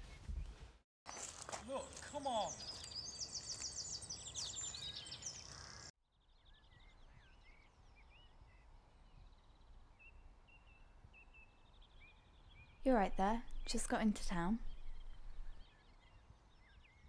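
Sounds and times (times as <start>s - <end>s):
birds trilling songs: 1.1s - 17.0s.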